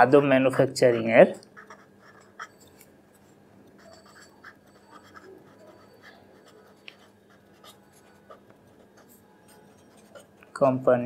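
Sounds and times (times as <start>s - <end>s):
pen scratching on paper: 0.5s - 10.6s.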